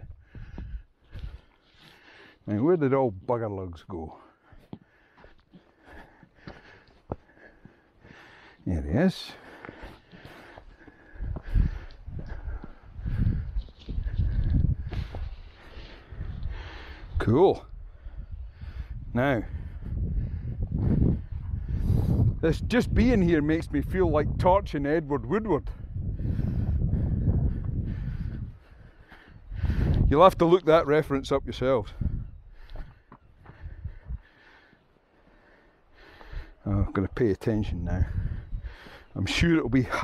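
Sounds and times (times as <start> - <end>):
wind rumbling on microphone: 0.0 - 1.5, 10.9 - 34.4, 36.2 - 40.0
footsteps on stony path: 0.0 - 17.0, 32.0 - 36.6, 38.1 - 40.0.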